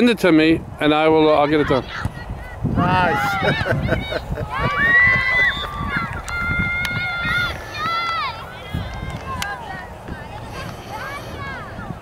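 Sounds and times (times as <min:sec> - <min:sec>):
low wind-like rumble: 0:00.0 - 0:12.0
high-pitched cheering shouts: 0:04.5 - 0:09.5.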